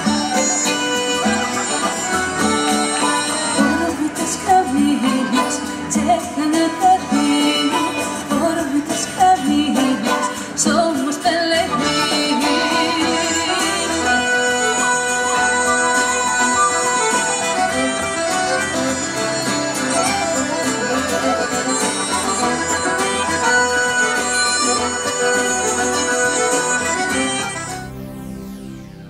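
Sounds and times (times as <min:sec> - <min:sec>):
button accordion: 0:00.0 - 0:10.8, 0:11.4 - 0:28.8
strummed acoustic guitar: 0:00.0 - 0:28.1
flute: 0:00.0 - 0:28.4.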